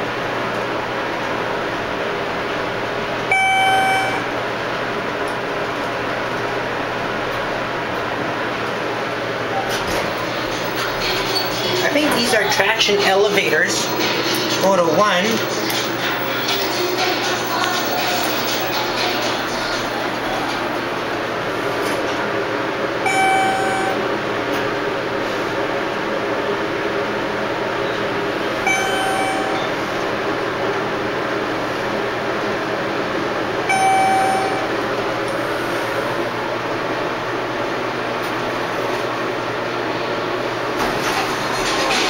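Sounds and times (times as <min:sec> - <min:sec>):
elevator running noise: 0:00.0 - 0:42.0
electronic elevator chimes: 0:03.3 - 0:04.3, 0:23.0 - 0:24.0, 0:28.7 - 0:29.8, 0:33.7 - 0:34.8.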